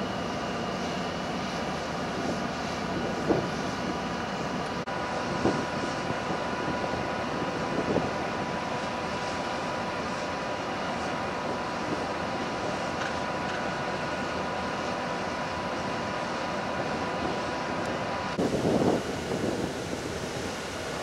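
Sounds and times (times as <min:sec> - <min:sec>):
ship machinery drone: 0:00.0 - 0:21.0.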